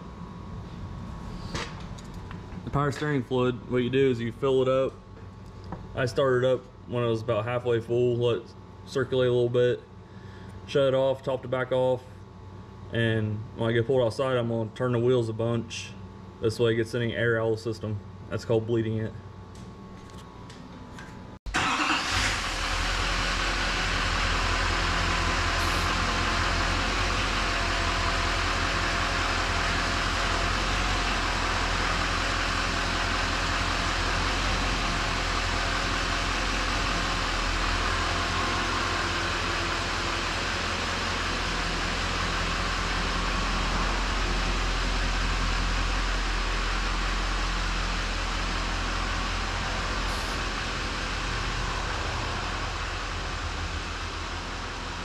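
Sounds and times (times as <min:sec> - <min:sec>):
diesel engine idling: 0:21.5 - 0:55.0.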